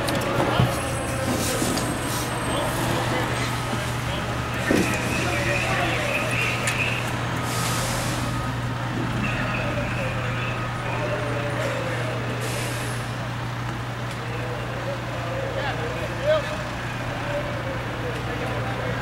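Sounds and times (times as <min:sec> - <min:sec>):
truck engine running: 0:00.0 - 0:19.0.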